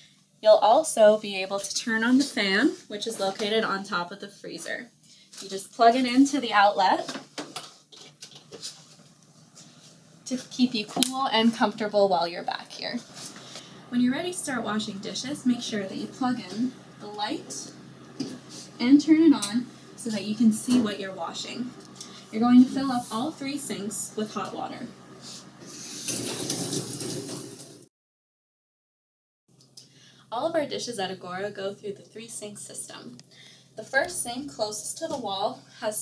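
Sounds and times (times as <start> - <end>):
faucet water running into sink: 25.6 - 27.8.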